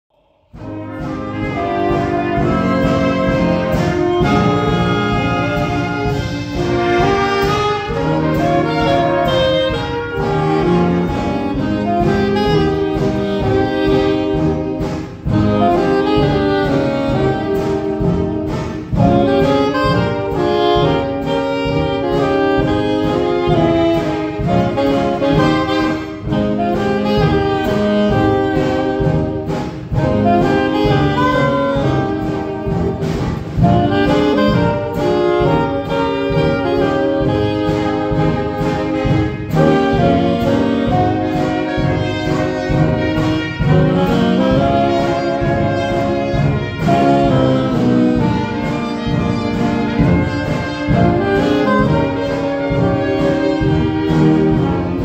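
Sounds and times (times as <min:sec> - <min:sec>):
saxophones and brass: 0:00.1 - 0:55.0
drums: 0:00.2 - 0:55.0.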